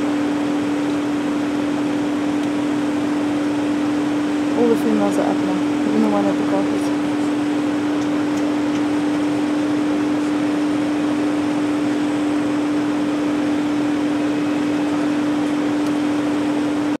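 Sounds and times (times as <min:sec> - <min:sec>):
vehicle mechanical hum: 0:00.0 - 0:17.0.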